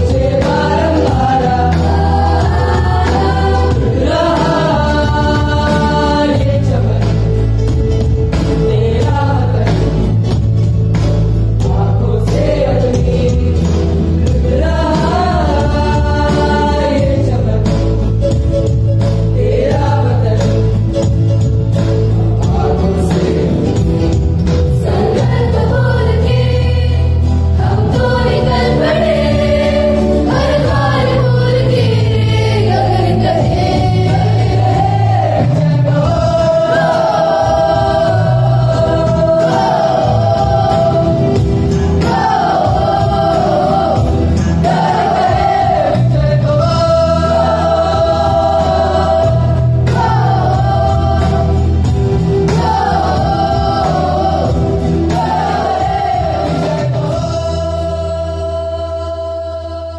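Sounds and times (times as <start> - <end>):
bass line: 0.0 - 59.9
choir singing with instruments: 0.0 - 59.9.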